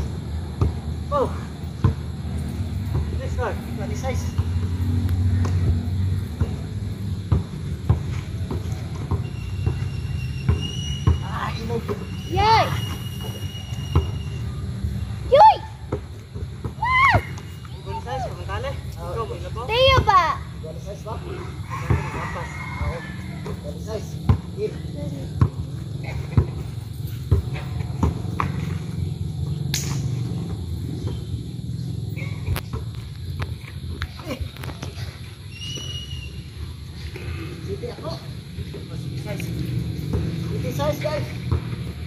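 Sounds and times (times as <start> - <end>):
basketball hitting backboard and rim: 0.5 - 1.0, 6.4 - 14.2, 27.2 - 28.8.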